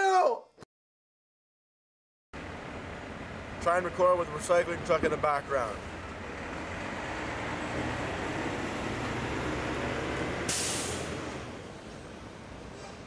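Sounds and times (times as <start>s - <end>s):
truck diesel engine running: 2.4s - 12.5s
short hiss of air: 10.5s - 11.2s.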